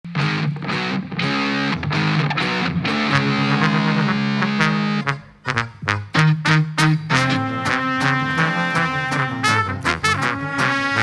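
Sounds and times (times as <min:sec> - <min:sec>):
live band playing chords: 0:00.1 - 0:11.0.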